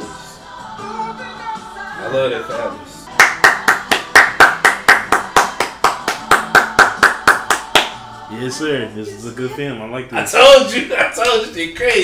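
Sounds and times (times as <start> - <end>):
person clapping hands: 3.1 - 8.0.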